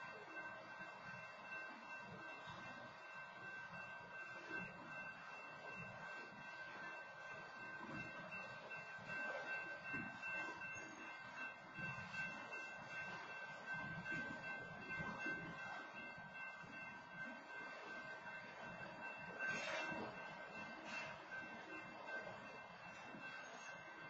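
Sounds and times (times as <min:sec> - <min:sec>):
train wheels rumbling on rails: 0:00.0 - 0:24.0.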